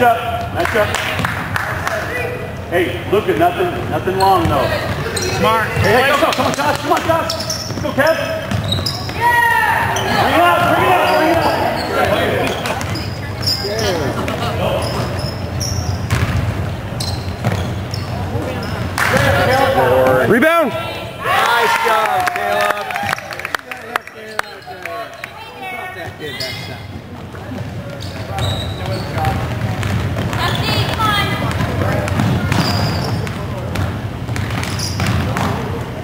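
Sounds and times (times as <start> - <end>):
voices in a hall: 0.0 - 36.0
basketball bouncing on hardwood: 16.0 - 16.7, 29.2 - 35.6.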